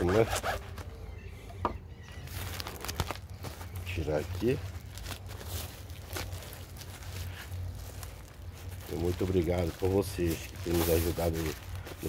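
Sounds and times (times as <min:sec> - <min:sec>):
plastic and cardboard rustling: 0:02.1 - 0:12.0.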